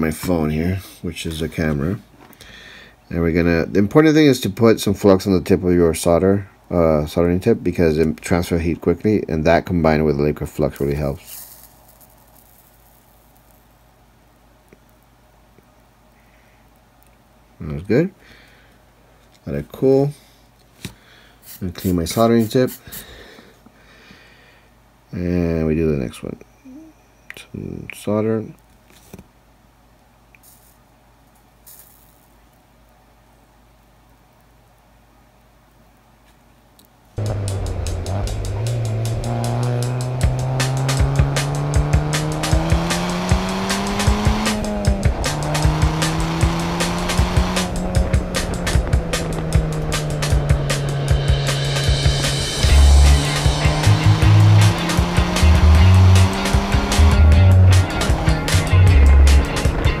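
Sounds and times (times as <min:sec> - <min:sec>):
car engine accelerating hard: 0:37.2 - 1:00.0
music with heavy beat: 0:37.3 - 1:00.0.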